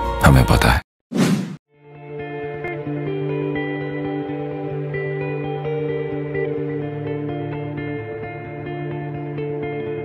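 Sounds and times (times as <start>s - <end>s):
whoosh: 1.1s - 1.6s
soft ambient music: 1.8s - 10.0s.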